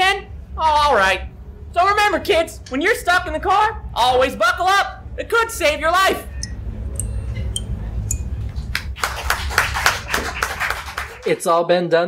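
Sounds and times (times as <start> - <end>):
low steady rumble: 0.0 - 11.3
audience applause: 8.5 - 11.4.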